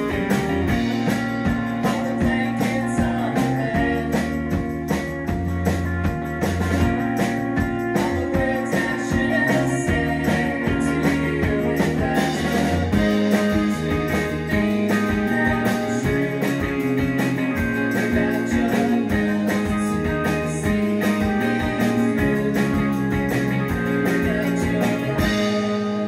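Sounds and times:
drums: 0.0 - 26.0
indie rock band playing live: 0.0 - 26.0.

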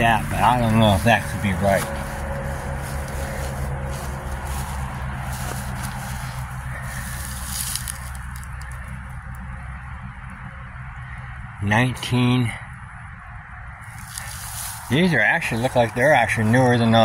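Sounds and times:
dry grass rustling and crackling: 0.0 - 9.9, 13.8 - 17.0
low background hum and rumble: 0.0 - 17.0.

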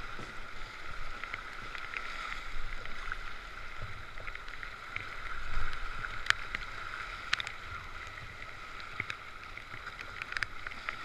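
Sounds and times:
sharp splashes and drips: 0.0 - 11.0.

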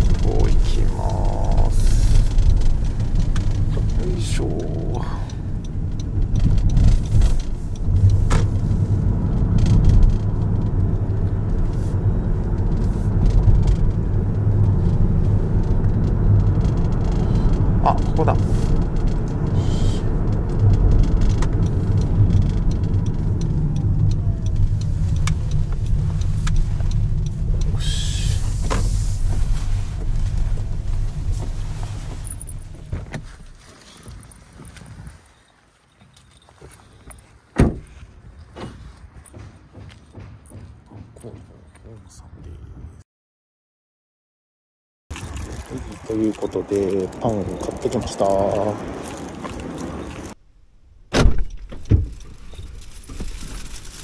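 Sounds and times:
road and tyre noise in car cabin: 0.0 - 43.0, 45.1 - 54.0.

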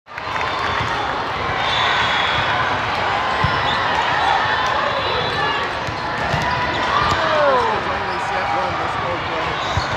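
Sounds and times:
chatter of many voices: 0.3 - 9.9
volleyballs thumping: 5.7 - 7.6.

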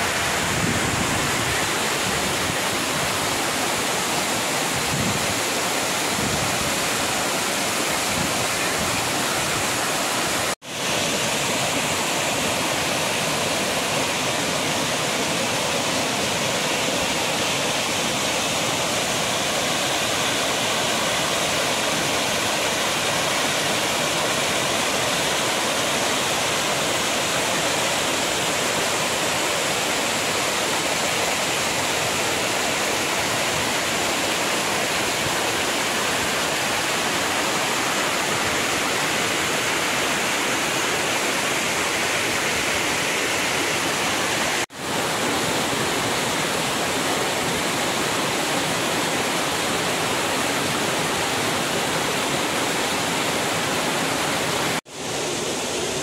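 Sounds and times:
waterfall rushing and splashing: 0.0 - 56.0.

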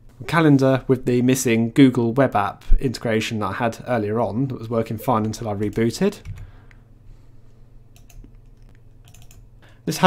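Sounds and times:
low background hum: 0.0 - 10.0
computer mouse clicks: 7.9 - 9.5.

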